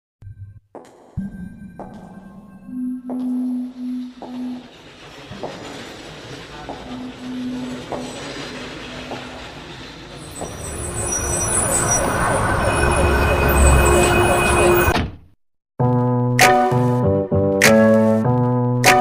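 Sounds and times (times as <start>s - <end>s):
rumbling noise: 1.2s - 15.0s
high squealing tones: 3.4s - 15.0s.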